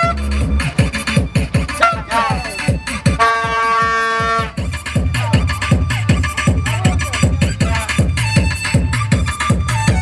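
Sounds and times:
party horn blowing: 0.0 - 0.3, 1.8 - 4.6
loud dance music: 0.0 - 10.0
thudding bass drum beat: 0.0 - 10.0.

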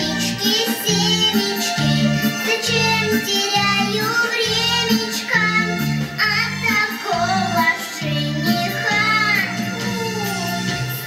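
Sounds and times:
girl singing: 0.0 - 10.7
backing music with bass line: 0.0 - 11.0.

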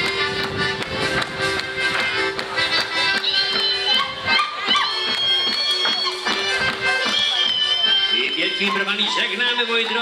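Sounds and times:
accordion playing: 0.0 - 10.0
man speaking: 8.1 - 10.0.

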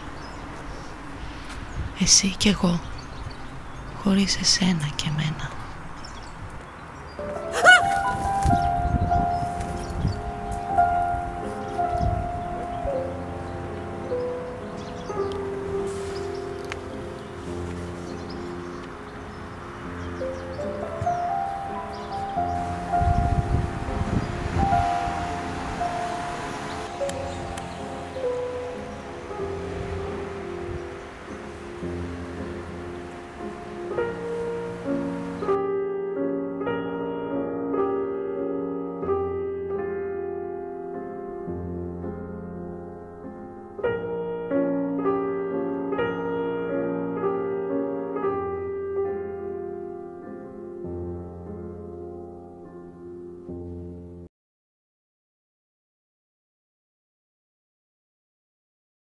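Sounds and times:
slow instrumental music: 5.2 - 54.3
rustling noise: 7.5 - 12.0, 15.4 - 19.0.

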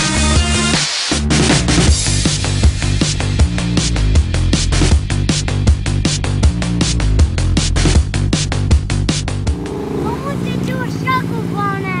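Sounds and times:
car engine rumbling: 7.4 - 12.0.

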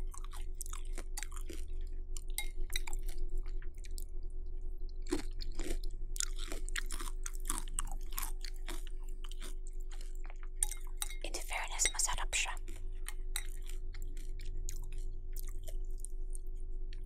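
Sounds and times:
crunchy cereal chewing: 0.0 - 4.1, 5.0 - 11.4, 12.4 - 17.0.

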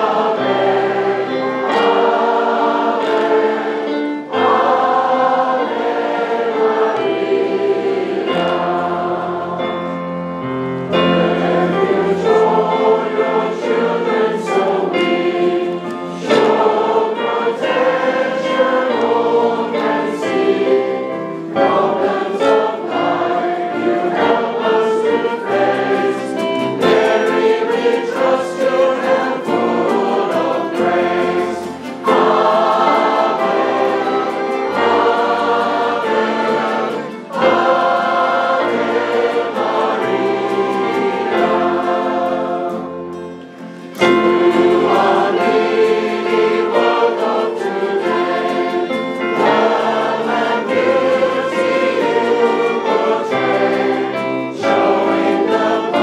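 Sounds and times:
choir and congregation singing hymn: 0.0 - 56.0
electric keyboard: 0.0 - 56.0
violins: 0.0 - 56.0.

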